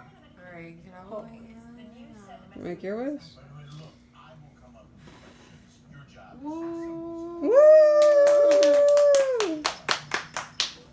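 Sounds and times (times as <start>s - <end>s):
hands clapping: 7.9s - 10.9s.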